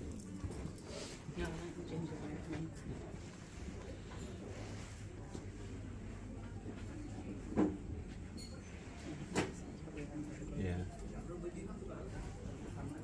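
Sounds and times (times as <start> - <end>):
shop interior hum: 0.0 - 13.0.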